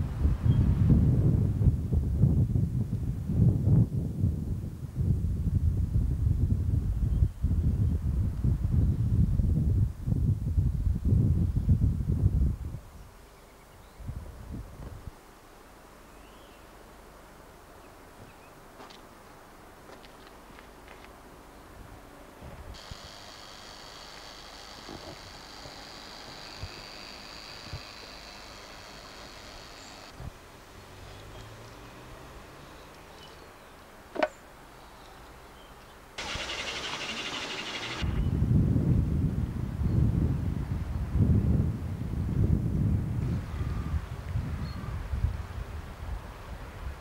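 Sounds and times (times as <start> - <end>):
gusty wind buffeting microphone: 0.0 - 13.1, 13.8 - 15.2, 36.2 - 47.0
steady high-pitched hiss: 4.7 - 42.2.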